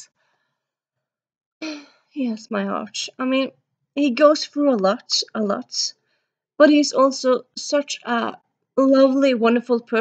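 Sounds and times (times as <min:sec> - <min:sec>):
woman's breathy sigh: 0:01.6 - 0:02.1.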